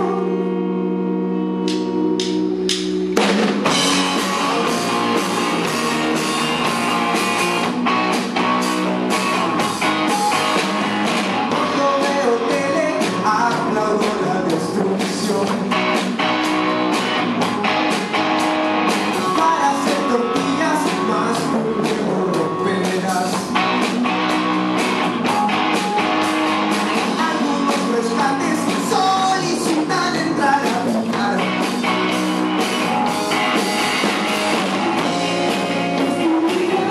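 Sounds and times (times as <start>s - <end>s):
electric guitars: 0.0s - 36.9s
drum kit beat: 1.6s - 36.9s.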